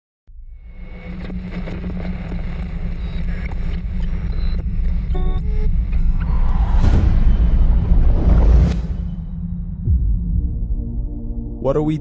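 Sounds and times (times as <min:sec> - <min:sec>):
deep rumbling drone: 0:00.3 - 0:11.8
glitchy beeping: 0:01.6 - 0:06.6.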